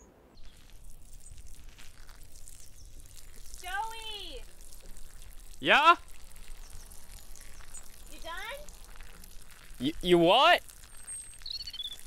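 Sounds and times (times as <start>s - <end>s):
faint outdoor background: 0.0s - 12.0s
faint high bird chirps: 10.8s - 12.0s.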